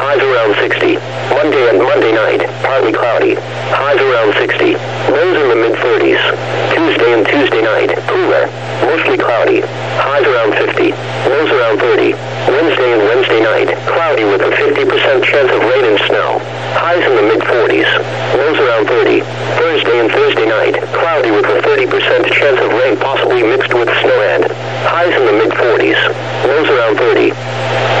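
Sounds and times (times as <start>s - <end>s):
synthesized voice over radio: 0.0s - 27.4s
steady low hum: 0.0s - 28.0s.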